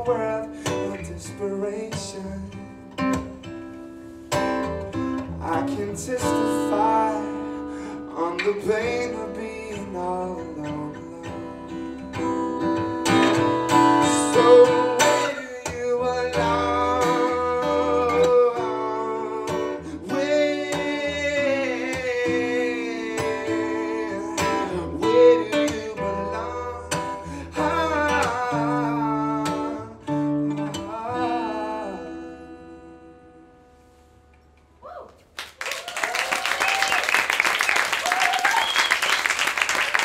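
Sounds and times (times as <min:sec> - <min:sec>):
man singing: 0:00.0 - 0:02.7, 0:05.4 - 0:12.0, 0:13.7 - 0:33.5
acoustic guitar strummed: 0:00.0 - 0:34.3.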